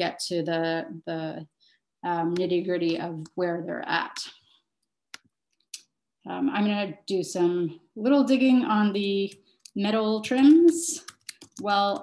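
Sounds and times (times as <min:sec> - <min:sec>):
woman speaking: 0:00.0 - 0:04.4, 0:06.3 - 0:12.0.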